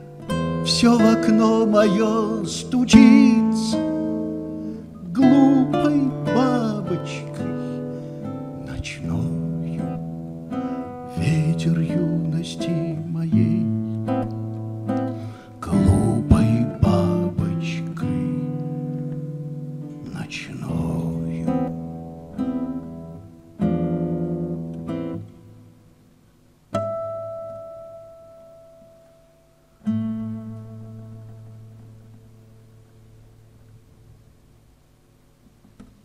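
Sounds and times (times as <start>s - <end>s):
acoustic guitar chords: 0.0s - 36.0s.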